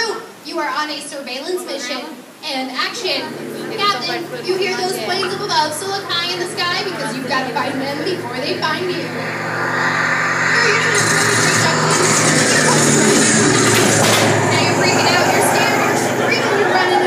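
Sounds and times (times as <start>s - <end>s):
warplanes engine drone: 2.7s - 17.0s.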